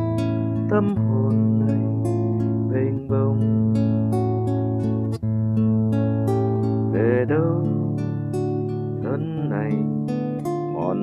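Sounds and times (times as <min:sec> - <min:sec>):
acoustic guitar strumming: 0:00.0 - 0:11.0
man singing: 0:00.7 - 0:02.0, 0:02.7 - 0:03.6, 0:06.9 - 0:08.0, 0:09.0 - 0:10.0, 0:10.7 - 0:11.0.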